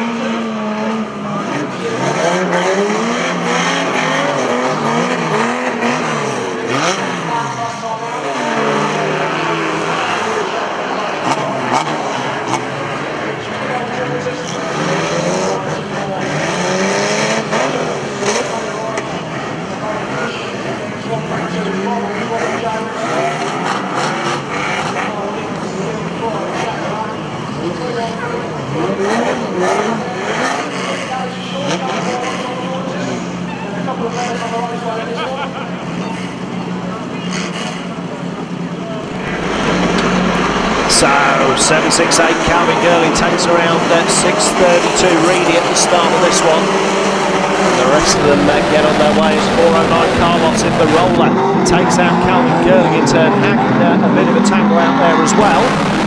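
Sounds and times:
racing car engines revving: 0:00.0 - 0:56.0.

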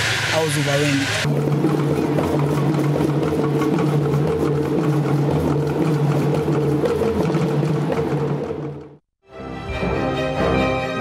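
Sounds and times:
rhythmic drumming: 0:00.0 - 0:09.0.

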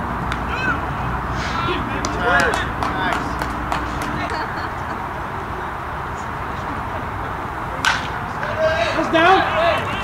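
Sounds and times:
players calling out: 0:00.3 - 0:10.0
bat cracking a ball: 0:02.0 - 0:04.2, 0:07.8 - 0:08.2.

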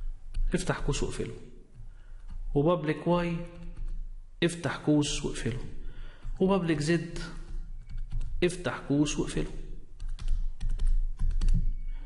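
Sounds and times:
stylus tapping and scraping on tablet: 0:01.7 - 0:02.5, 0:06.2 - 0:08.4, 0:10.0 - 0:11.8.

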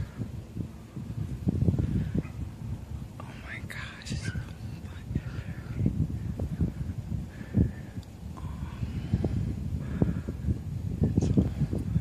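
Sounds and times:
wind rumble on microphone: 0:00.0 - 0:12.0
person whispering: 0:03.2 - 0:05.8.

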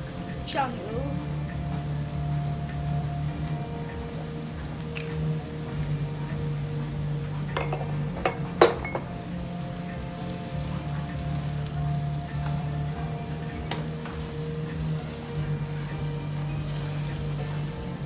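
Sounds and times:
faint frying patter: 0:00.0 - 0:18.0
quiet background music: 0:00.0 - 0:18.0
wooden spatula stirring in a wok: 0:00.0 - 0:18.0.

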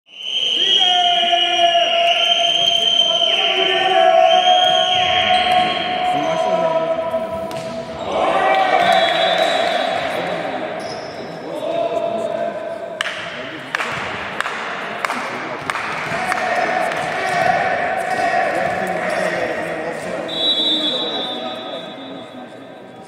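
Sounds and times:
voices in a sports hall: 0:00.1 - 0:23.0
volleyball strikes: 0:07.4 - 0:10.1, 0:13.0 - 0:19.1.

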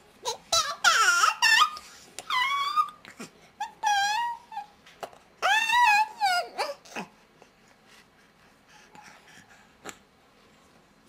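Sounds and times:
baby high-pitched vocal calls: 0:00.2 - 0:03.0, 0:03.6 - 0:04.8, 0:05.4 - 0:07.1.

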